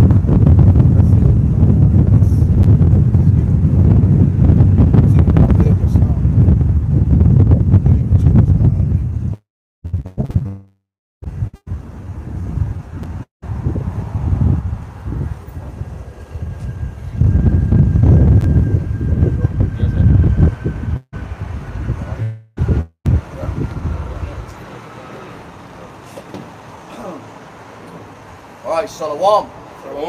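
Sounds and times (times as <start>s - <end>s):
low rumbling street noise: 11.2s - 30.0s.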